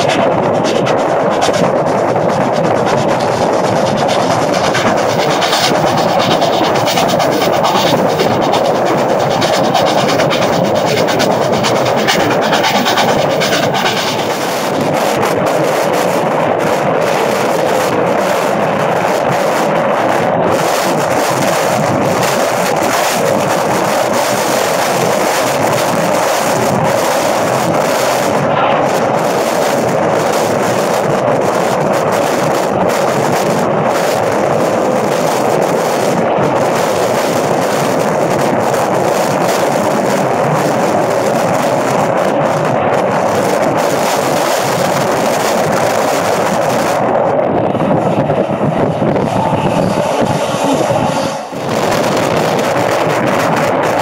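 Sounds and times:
train wind and wheels rushing: 0.0 - 54.0.

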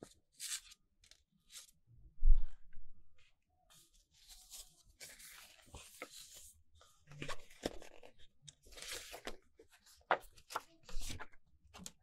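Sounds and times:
paper rustling and crackling: 4.2 - 12.0.

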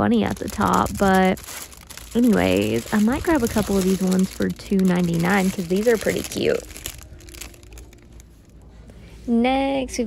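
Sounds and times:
cellophane wrappers crinkling: 0.0 - 8.7.

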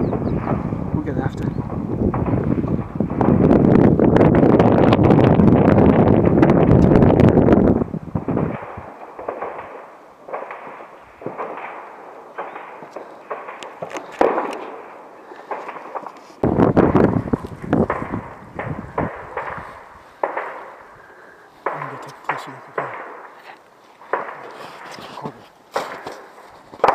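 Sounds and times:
distant gunfire: 1.6 - 3.6, 8.2 - 16.1, 17.8 - 23.4, 24.0 - 24.6, 25.7 - 26.9.

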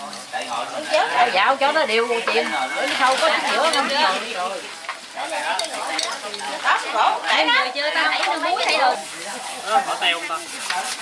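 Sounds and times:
chopsticks tossing wet noodles: 0.0 - 4.4, 5.2 - 11.0
light clicks against metal pot: 4.8 - 6.4.

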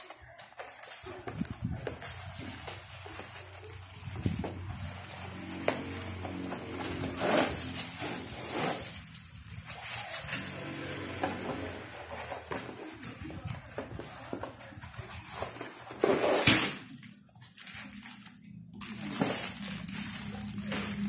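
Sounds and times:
plastic wrapping crinkling: 0.0 - 10.7, 11.6 - 21.0.

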